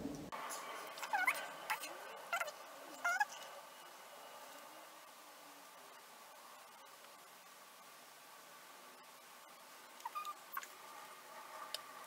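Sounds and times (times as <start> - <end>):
squeaky animal calls: 1.0 - 3.5, 10.0 - 10.7.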